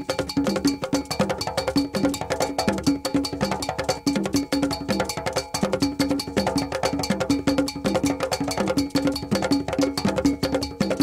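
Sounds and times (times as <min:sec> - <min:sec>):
bell struck in fast pattern: 0:00.0 - 0:11.0
pitched drums: 0:00.0 - 0:11.0.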